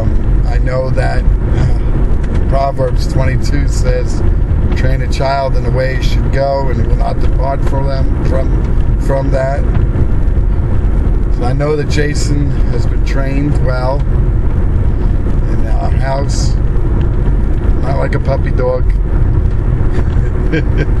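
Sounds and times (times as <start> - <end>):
person's voice: 0.0 - 9.8, 11.4 - 14.1, 15.5 - 16.6, 17.8 - 19.0
car rumbling: 0.0 - 21.0.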